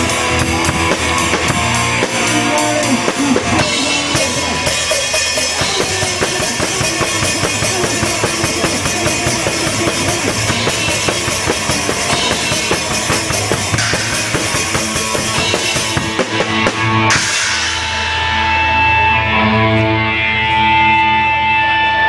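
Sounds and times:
fast drumming on drum kit: 0.0s - 18.2s
punk band playing loud: 0.0s - 21.9s
electric guitars: 0.0s - 22.0s.

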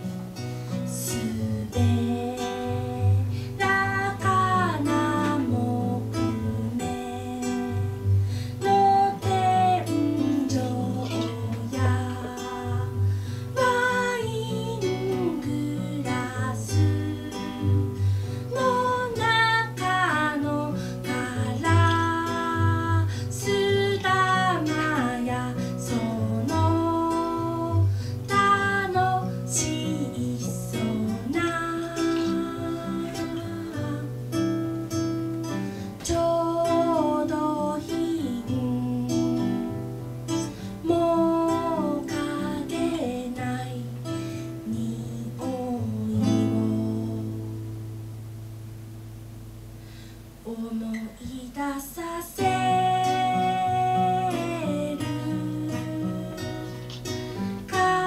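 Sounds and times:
woman singing: 0.0s - 47.8s, 50.4s - 58.0s.

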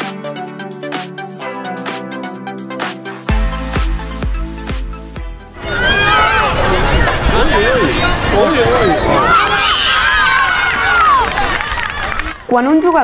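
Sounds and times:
children shouting: 5.6s - 12.5s.

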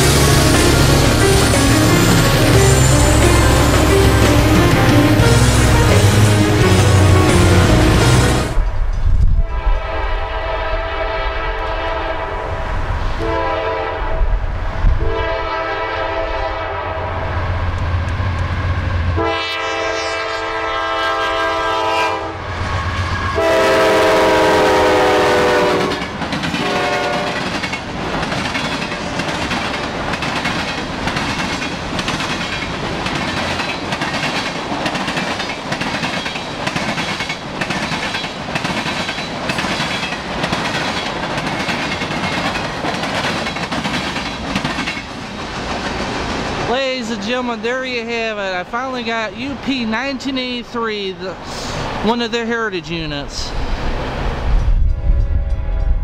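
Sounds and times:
locomotive engine rumble: 0.0s - 9.0s
locomotive horn blasts: 13.2s - 14.2s, 15.0s - 17.2s, 19.2s - 22.5s, 23.2s - 27.4s
train wheels clickety-clack: 25.8s - 46.3s.

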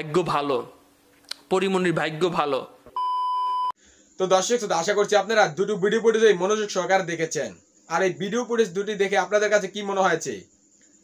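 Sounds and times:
electronic beep: 3.0s - 3.8s.

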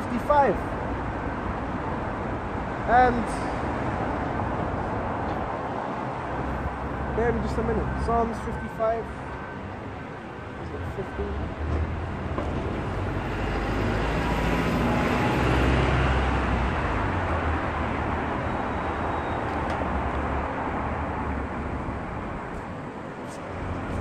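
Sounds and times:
vehicle passing: 2.2s - 19.0s.

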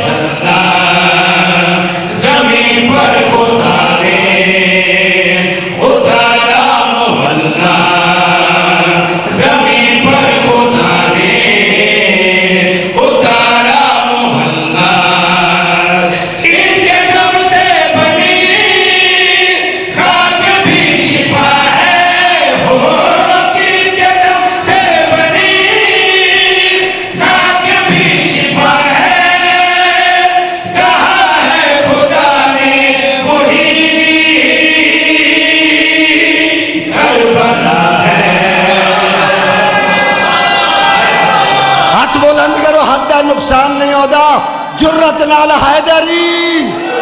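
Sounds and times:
men singing together: 0.0s - 47.0s.

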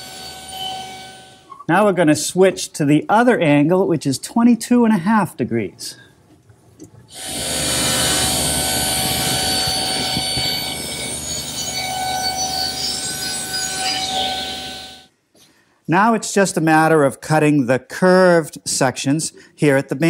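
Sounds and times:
table saw cutting wood: 0.0s - 1.4s, 7.1s - 15.1s.

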